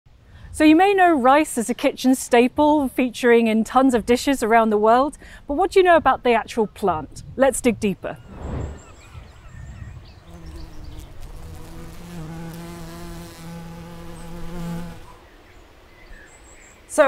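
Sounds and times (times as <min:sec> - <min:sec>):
soft whoosh: 0:08.2 - 0:09.7
bee buzzing: 0:10.2 - 0:15.2.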